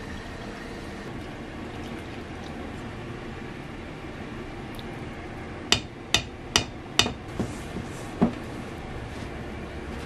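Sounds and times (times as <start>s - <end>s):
taps on a metal mixing bowl: 5.7s - 7.2s.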